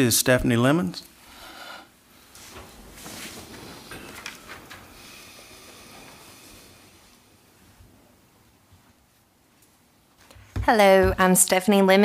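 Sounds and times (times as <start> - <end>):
faint room noise hiss: 0.0 - 12.0.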